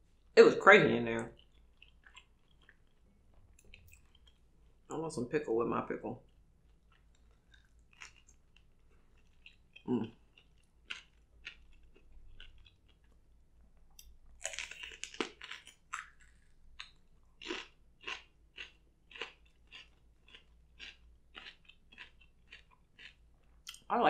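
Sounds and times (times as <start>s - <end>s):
crunchy chewing: 1.3s - 4.9s, 6.2s - 13.2s, 13.9s - 23.8s.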